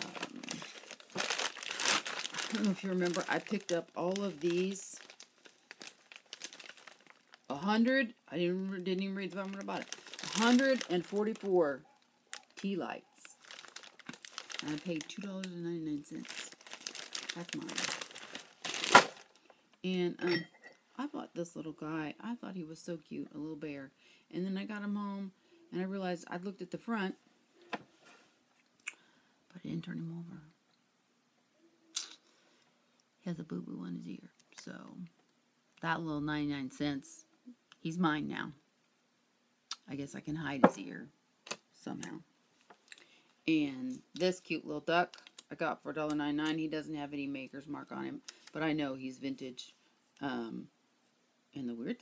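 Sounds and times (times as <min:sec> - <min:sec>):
plastic bag crinkling: 0:00.0 - 0:07.8, 0:08.7 - 0:19.5.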